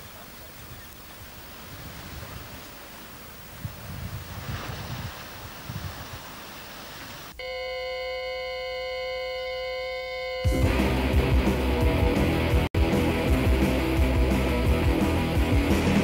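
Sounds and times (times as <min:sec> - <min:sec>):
distant surf rushing: 0:00.0 - 0:07.4
wind gusts on microphone: 0:00.0 - 0:07.4
steady multi-pitch electronic tone: 0:07.4 - 0:12.6.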